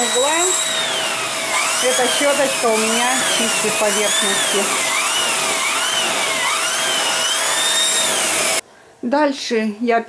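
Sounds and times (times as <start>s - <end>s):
vacuum cleaner motor whining: 0.0s - 8.6s.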